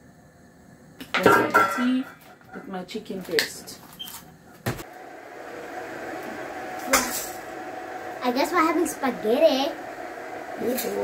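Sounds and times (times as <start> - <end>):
pot of water hissing on gas hob: 4.8 - 11.0.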